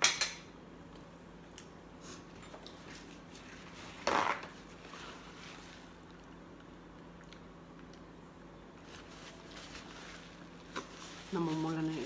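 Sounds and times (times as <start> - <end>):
low steady room hum: 0.0 - 12.0
paper towel rustling: 8.8 - 12.0.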